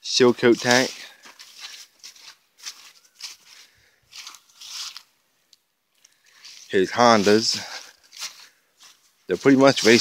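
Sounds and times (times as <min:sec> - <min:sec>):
footsteps crunching dry leaves: 0:00.0 - 0:05.2, 0:05.9 - 0:10.0.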